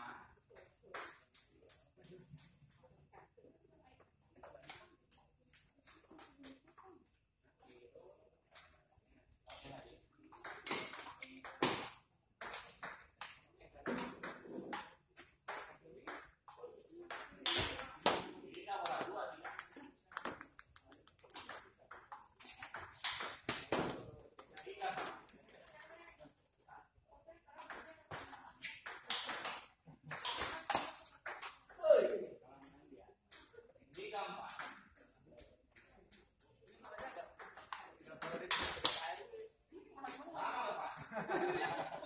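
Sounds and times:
ball bouncing on table: 10.3 - 25.8, 27.6 - 31.8, 32.6 - 39.1
ball clicking off paddles: 10.3 - 25.8, 27.6 - 31.8.

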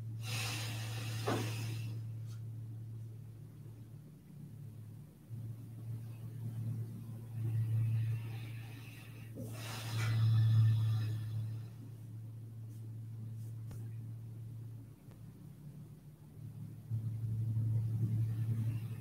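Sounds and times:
steady low hum: 0.0 - 19.0
person breathing slowly: 0.1 - 2.5, 7.2 - 13.6.

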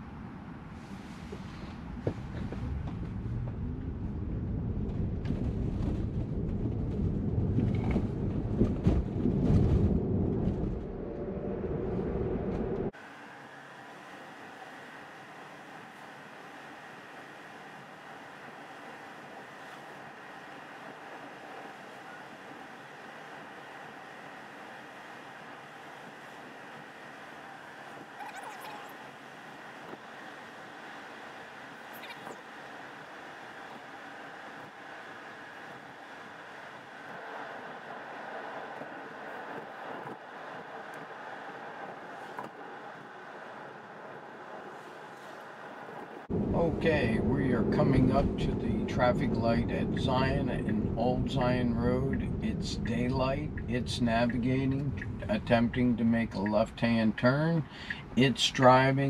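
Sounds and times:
tyre and road noise in car cabin: 0.0 - 59.0.

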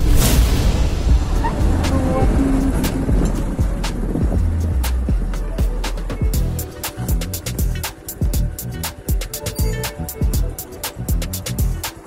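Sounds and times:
background music: 0.0 - 12.0
motor scooter engine rumbling: 0.7 - 12.0.

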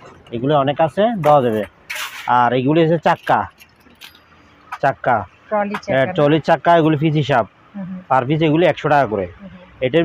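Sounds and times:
metal casters jangling in crate: 3.1 - 4.4.

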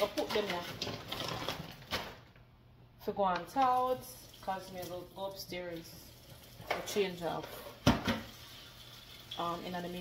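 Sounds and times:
crinkly rustling: 0.0 - 2.4.

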